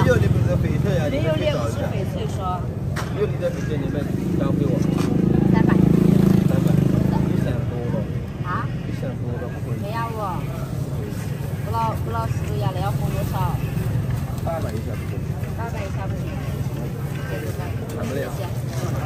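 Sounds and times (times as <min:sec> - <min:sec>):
people talking: 0:00.0 - 0:19.0.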